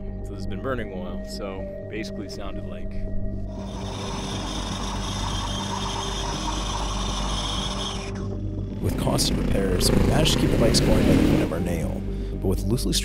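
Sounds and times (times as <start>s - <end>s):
background music: 0.0s - 13.0s
motorcycle engine grinding: 3.6s - 11.6s.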